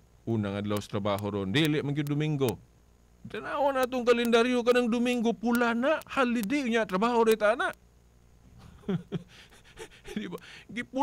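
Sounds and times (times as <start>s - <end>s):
man chuckling quietly: 8.6s - 10.4s.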